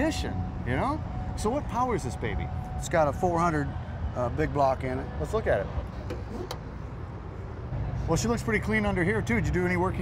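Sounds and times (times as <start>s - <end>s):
low traffic rumble: 0.0s - 10.0s.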